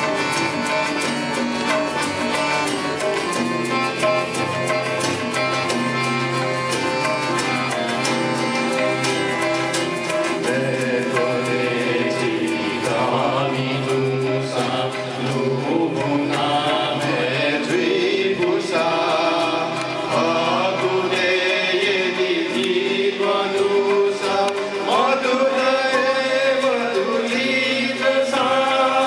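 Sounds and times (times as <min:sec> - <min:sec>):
harmonium holding steady notes: 0:00.0 - 0:29.0
group of people singing: 0:07.7 - 0:29.0.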